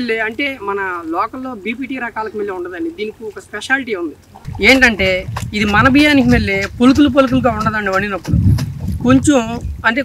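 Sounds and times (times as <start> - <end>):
man talking: 0.0 - 8.4, 9.0 - 10.0
low wind rumble on microphone: 4.4 - 10.0.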